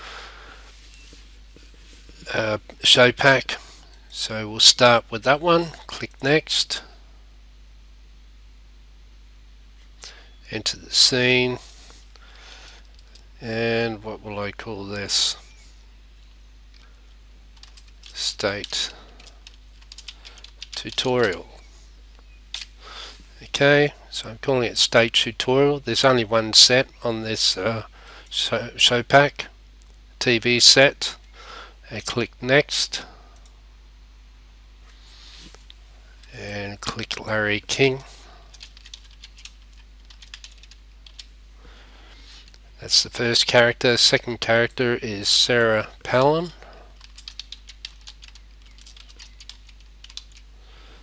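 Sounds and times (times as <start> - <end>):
low room noise: 0.0 - 51.0
keyboard typing: 17.5 - 21.4, 38.5 - 41.3, 47.0 - 50.5
keyboard keystrokes: 47.0 - 50.4.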